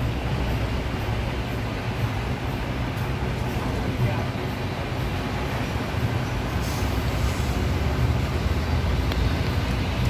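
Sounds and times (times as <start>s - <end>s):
diesel truck engine running: 0.0s - 10.0s.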